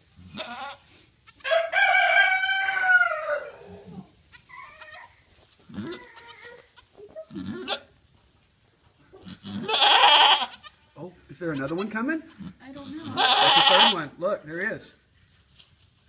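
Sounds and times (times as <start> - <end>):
goat bleating: 0.2 - 1.5, 4.3 - 7.9, 9.0 - 10.8, 11.4 - 14.1.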